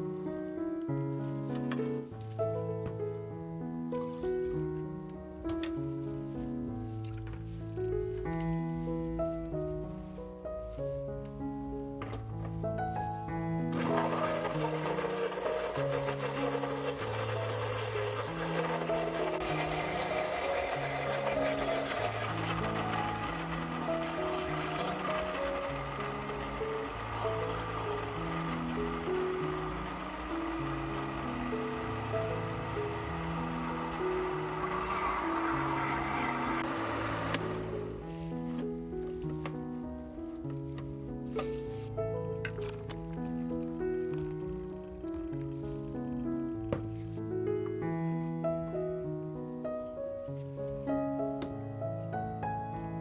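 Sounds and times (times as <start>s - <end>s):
background music with plucked melody: 0.0s - 49.3s
electric blender running: 13.7s - 38.2s.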